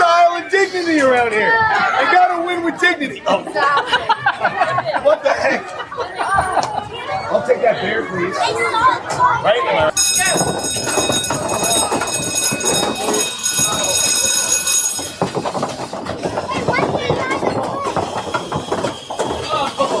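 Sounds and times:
people talking: 0:00.0 - 0:15.1, 0:16.2 - 0:20.0
balls rattling along wooden lanes: 0:08.8 - 0:20.0.

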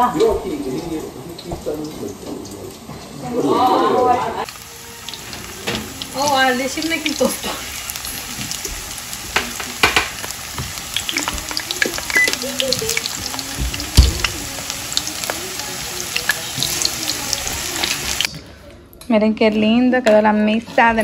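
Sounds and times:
food sizzling in hot oil: 0:00.0 - 0:18.3.

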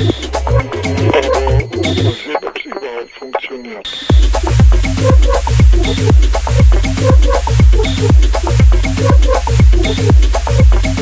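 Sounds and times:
radio-like spoken vocal sample: 0:00.0 - 0:11.0.

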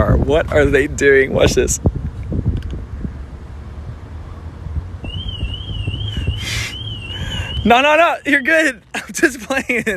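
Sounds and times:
car alarm siren warbling: 0:05.0 - 0:08.2.

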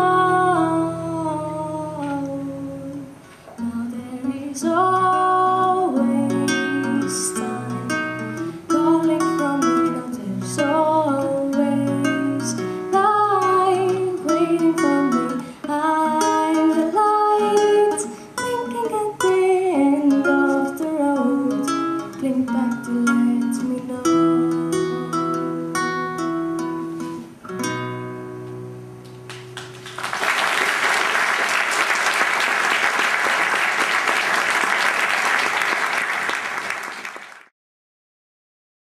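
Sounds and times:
classical guitar fingerpicked: 0:00.0 - 0:29.6
audience applause: 0:29.3 - 0:37.5.

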